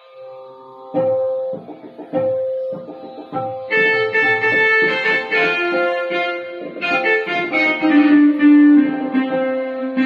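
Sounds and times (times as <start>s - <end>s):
electronic keyboard melody: 0.0s - 10.0s.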